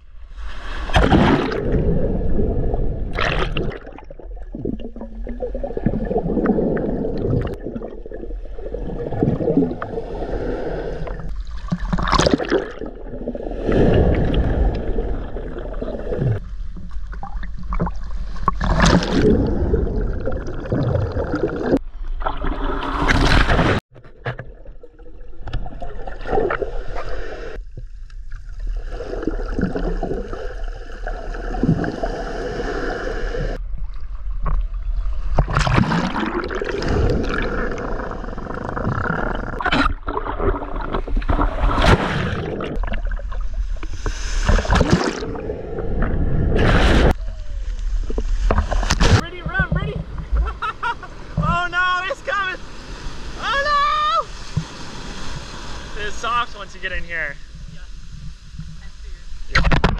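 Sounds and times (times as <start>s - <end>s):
waves breaking over camera: 0.2s - 59.9s
muffled underwater rumbling: 0.8s - 51.5s.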